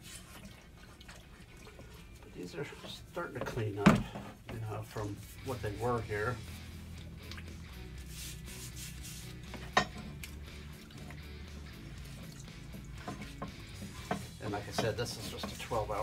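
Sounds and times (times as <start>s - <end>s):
faint background music: 0.0s - 16.0s
metal brackets clinking in tub: 12.7s - 16.0s.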